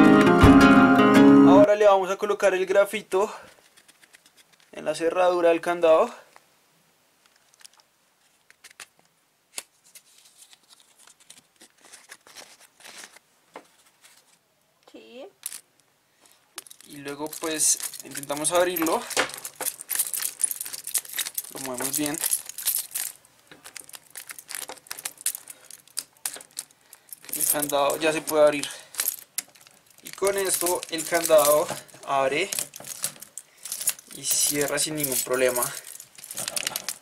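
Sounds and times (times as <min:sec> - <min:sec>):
key rattling in padlock: 0:16.6 - 0:37.0.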